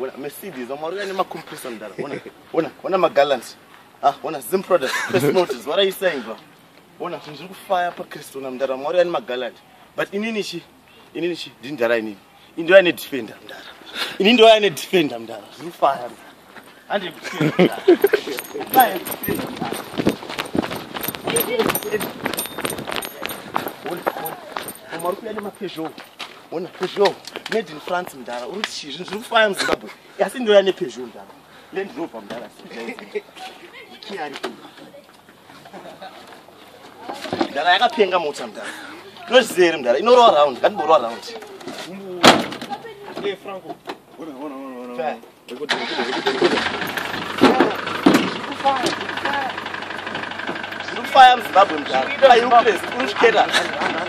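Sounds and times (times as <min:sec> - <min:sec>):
people talking: 0:00.0 - 0:06.4, 0:16.9 - 0:20.2, 0:21.0 - 0:25.9, 0:47.4 - 0:49.6, 0:51.0 - 0:54.0
running footsteps on dirt: 0:16.0 - 0:29.3
engine idling: 0:45.8 - 0:54.0.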